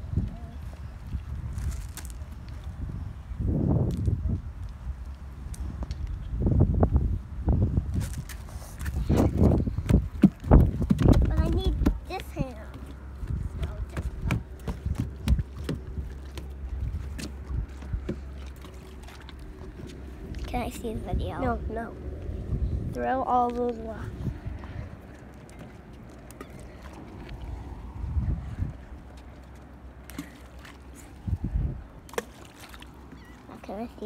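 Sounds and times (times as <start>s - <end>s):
wind rumble on microphone: 0.0s - 30.2s, 30.8s - 32.2s
footsteps on wooden boards: 8.8s - 18.3s.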